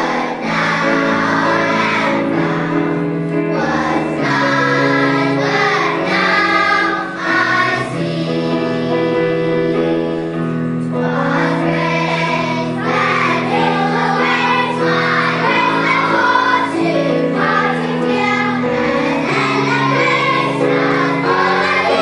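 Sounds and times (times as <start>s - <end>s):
children's choir singing: 0.0s - 22.0s
keyboard chords: 0.0s - 22.0s.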